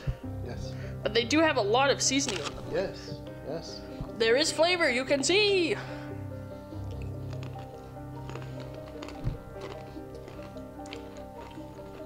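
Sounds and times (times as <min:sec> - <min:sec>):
soft background music: 0:00.0 - 0:12.0
crackers being chewed: 0:02.2 - 0:02.7, 0:06.8 - 0:12.0.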